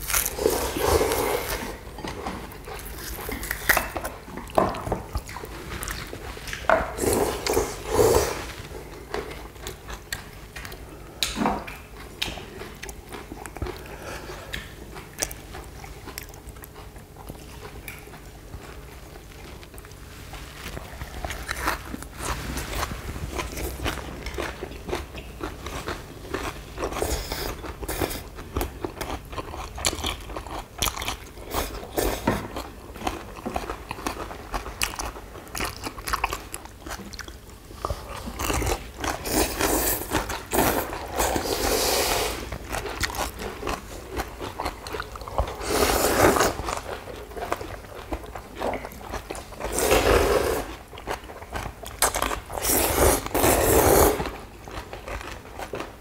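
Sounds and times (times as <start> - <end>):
wet chewing and crunching: 0.0 - 56.0
slurping noodles: 0.3 - 1.9, 7.0 - 8.7, 39.2 - 42.5, 45.5 - 46.8, 49.6 - 50.8, 52.5 - 54.4.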